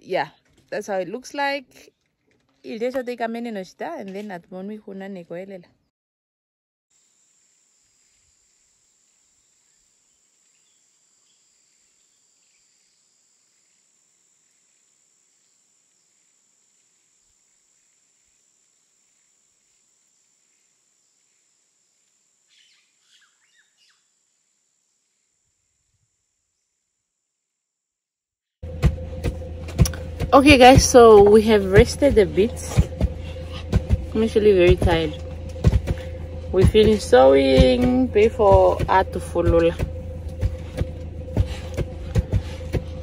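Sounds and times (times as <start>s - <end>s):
high-pitched insect drone: 7.0s - 26.4s, 28.6s - 43.0s
bird chirps: 22.5s - 24.1s.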